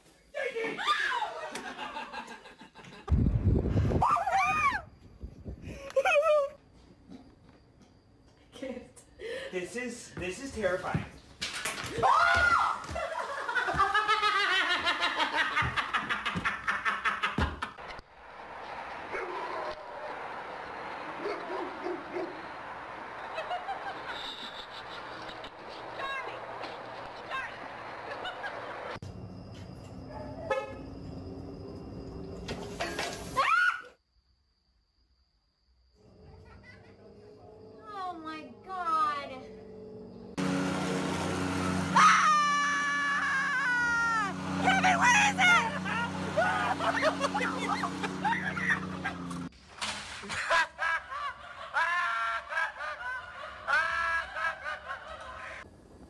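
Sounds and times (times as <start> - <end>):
man laughing: 12.9 - 17.6, 45.3 - 49.4, 50.2 - 55.6
dogs barking: 21.2 - 22.5
man screaming: 41.9 - 49.0.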